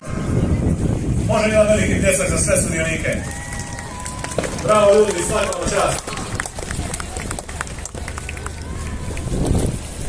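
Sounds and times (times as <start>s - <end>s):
low rumble: 0.0s - 1.3s, 3.2s - 10.0s
crowd applauding: 3.1s - 9.6s.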